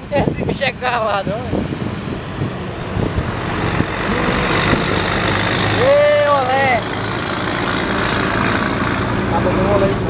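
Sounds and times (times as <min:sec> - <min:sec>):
truck diesel engine roaring past: 0:01.0 - 0:10.0.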